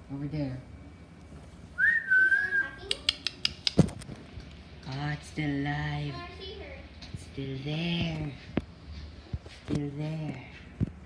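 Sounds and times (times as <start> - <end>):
person whistling high note: 1.8 - 2.8.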